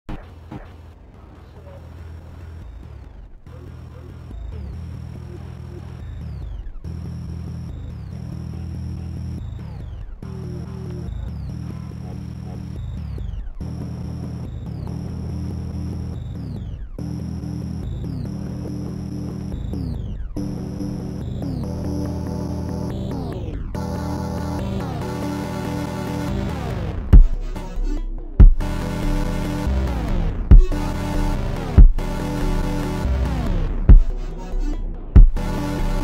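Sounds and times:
electronic dance music: 2.2 - 36.0.

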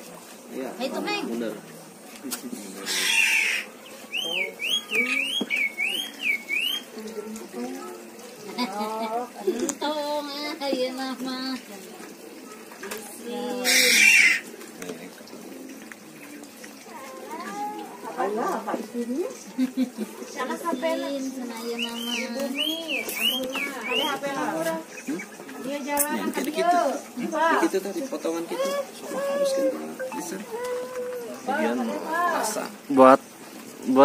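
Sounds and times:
indistinct voices talking: 20.4 - 27.6, 28.4 - 32.5.

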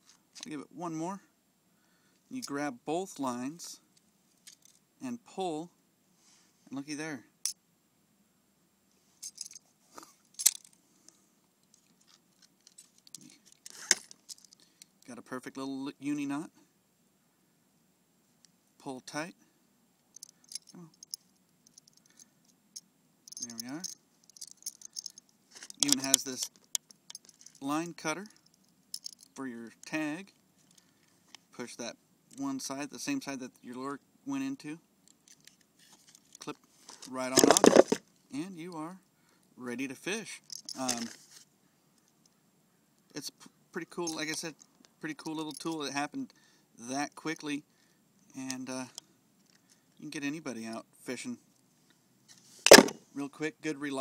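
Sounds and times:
fishing line rustling: 23.3 - 29.4, 35.1 - 38.1.

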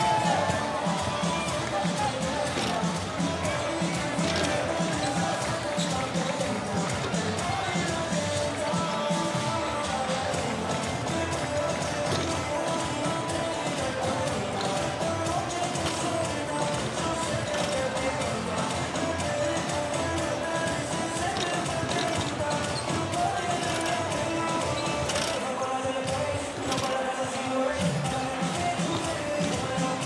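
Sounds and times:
murmur of crowd voices: 0.0 - 30.0
music over loudspeakers: 0.0 - 30.0.

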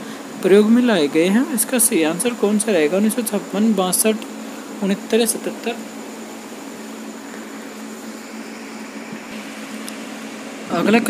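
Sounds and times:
steady hum with faint buzz: 0.0 - 11.0.

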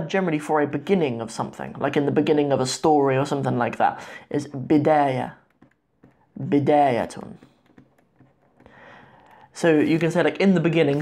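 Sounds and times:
stylus tapping on plastic tablet: 4.8 - 9.6.

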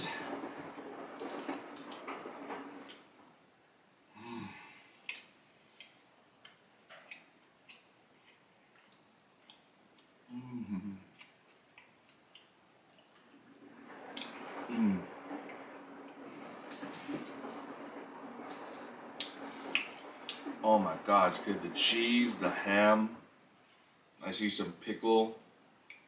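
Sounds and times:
laundry machine humming: 0.0 - 3.4, 12.8 - 23.4
person humming mm: 4.1 - 4.8, 10.3 - 11.2
person chewing food: 5.0 - 10.2, 10.9 - 13.3.

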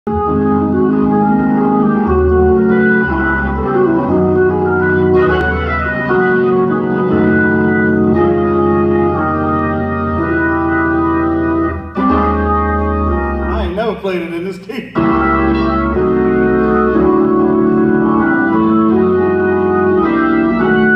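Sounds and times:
organ playing gospel chords: 0.1 - 20.9.

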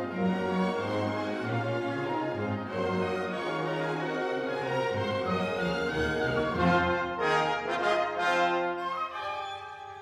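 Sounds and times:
orchestra playing held notes: 0.0 - 10.0.

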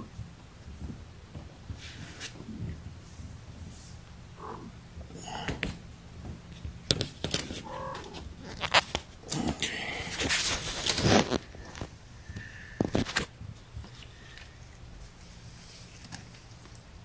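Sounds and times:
kitten mewing: 4.4 - 4.8, 7.6 - 8.7.

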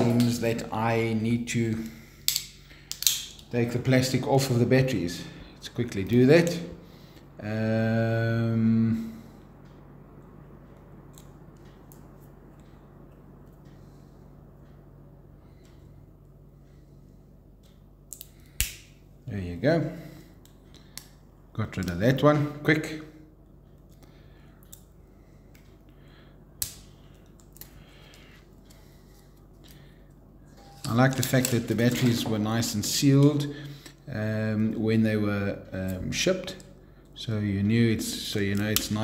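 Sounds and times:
low steady hum: 0.0 - 39.0.

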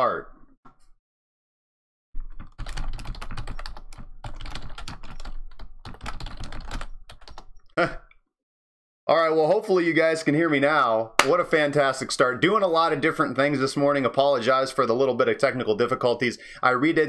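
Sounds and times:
rapid typing on keyboard: 2.2 - 7.6.

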